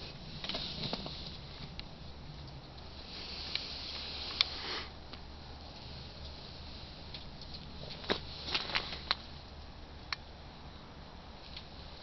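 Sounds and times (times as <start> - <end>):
wood fire burning: 0.0 - 10.4.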